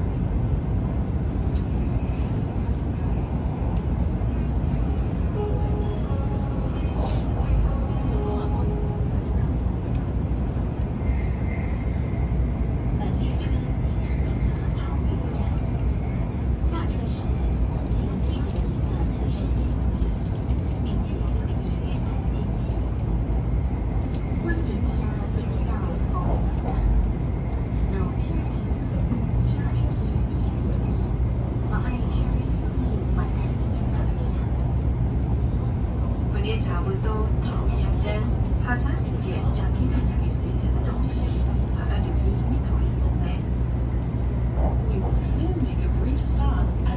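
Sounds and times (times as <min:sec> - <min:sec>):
train rumbling at speed: 0:00.0 - 0:46.9.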